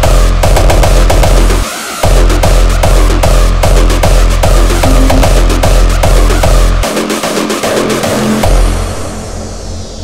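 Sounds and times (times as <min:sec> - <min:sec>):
hardstyle electronic dance music: 0:01.5 - 0:08.7.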